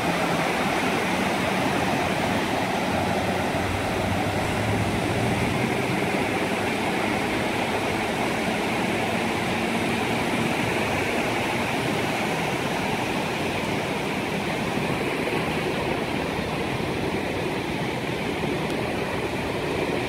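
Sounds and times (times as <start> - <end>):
ocean surf breaking on beach: 0.0 - 20.0.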